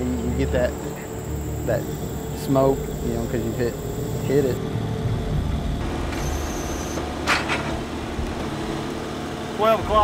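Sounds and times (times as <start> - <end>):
faint high whine: 0.0 - 7.1
diesel engine running: 0.0 - 10.0.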